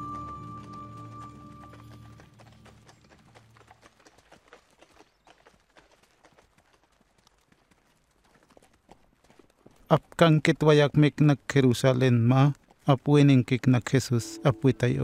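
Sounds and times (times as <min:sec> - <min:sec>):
background music: 0:00.0 - 0:02.4, 0:14.1 - 0:15.0
donkey hooves clip-clopping: 0:00.0 - 0:15.0.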